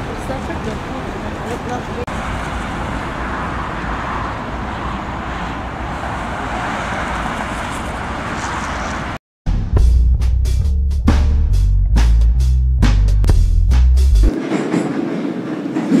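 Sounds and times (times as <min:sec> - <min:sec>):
road traffic noise: 0:00.0 - 0:09.2.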